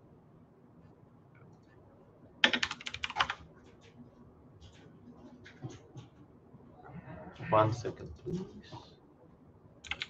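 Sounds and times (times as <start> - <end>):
keyboard typing: 2.4 - 3.9.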